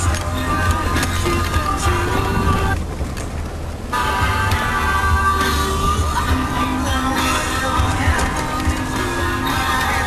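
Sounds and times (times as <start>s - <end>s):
background music: 0.0s - 2.9s, 3.5s - 10.0s
vehicle rumbling on dirt trail: 0.0s - 10.0s.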